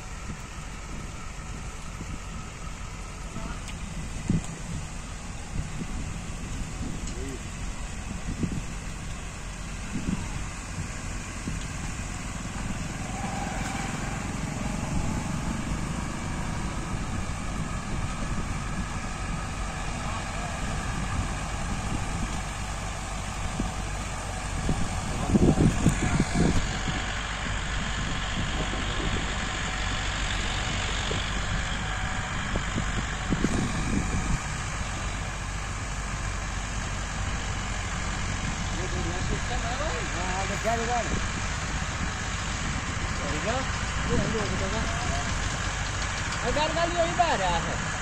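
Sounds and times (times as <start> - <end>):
tractor engines running: 0.0 - 48.0.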